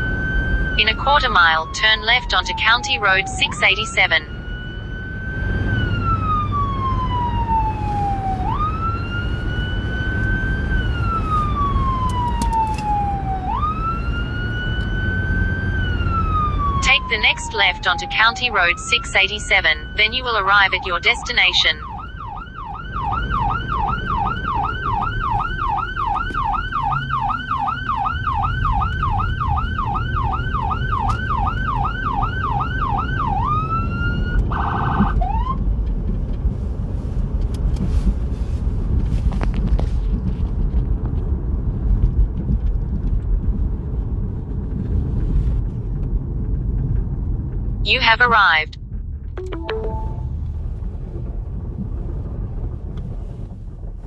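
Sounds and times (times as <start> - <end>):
electronic siren yelp: 0.0 - 35.6
vehicle engine and tyre noise: 0.0 - 48.2, 48.8 - 54.0.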